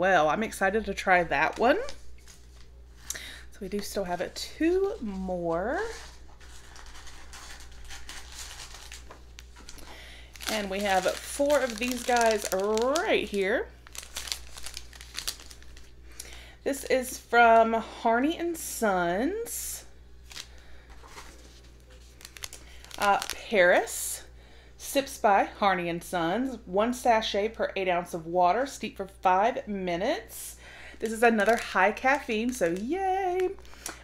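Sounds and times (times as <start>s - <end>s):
low steady hum: 0.0s - 34.0s
packaging rustling and crinkling: 1.4s - 3.1s, 4.7s - 16.3s, 20.2s - 23.7s, 31.0s - 34.0s.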